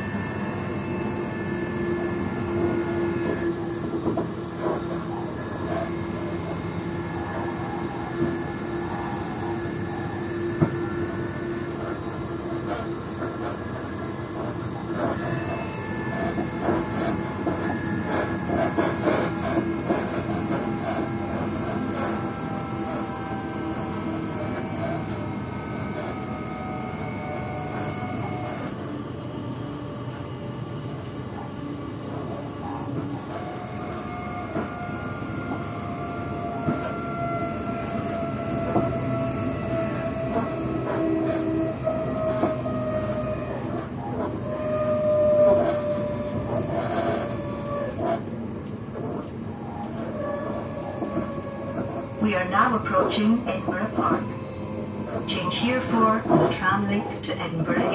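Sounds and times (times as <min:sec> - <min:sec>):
train rumbling on rails: 0:00.0 - 0:57.9.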